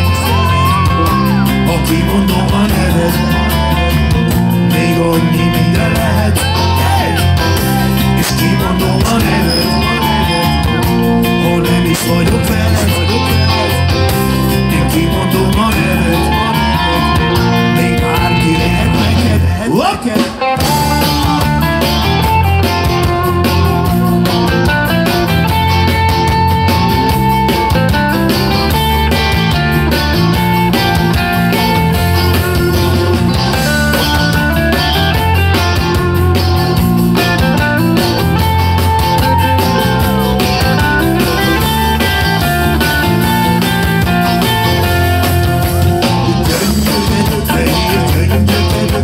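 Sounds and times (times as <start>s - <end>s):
rock band playing instrumental: 0.0s - 49.0s.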